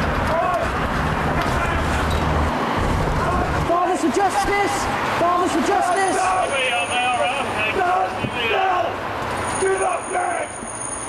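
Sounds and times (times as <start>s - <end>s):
outdoor street noise: 0.0s - 11.0s
men calling out: 3.2s - 9.0s.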